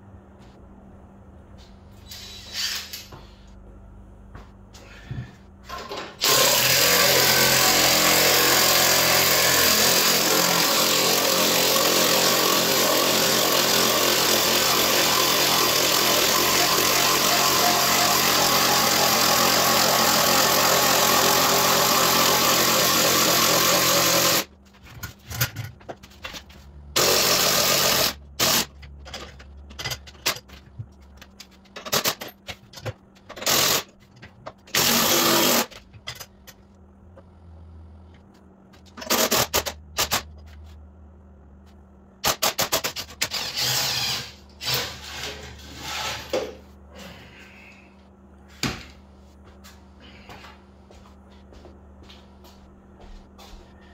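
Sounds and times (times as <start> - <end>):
cordless drill spinning jack screw: 43.3 - 44.8.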